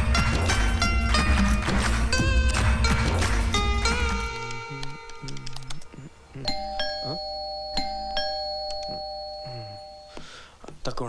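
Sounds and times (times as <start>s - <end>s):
film music with sliding notes: 0.0s - 7.2s
bell-like chime ringing: 6.5s - 10.3s.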